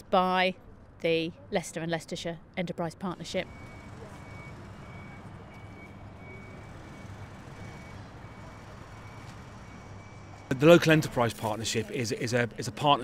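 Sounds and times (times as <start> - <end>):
diesel machine running: 3.2 - 12.8
reversing alarm beeping: 3.4 - 10.6.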